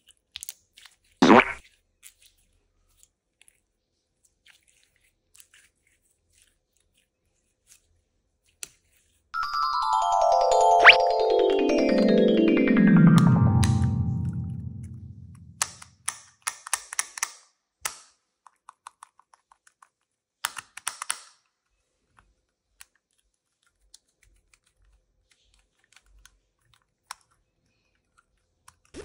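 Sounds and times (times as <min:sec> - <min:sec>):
plastic toy clicking and tapping: 0:15.6 - 0:21.6.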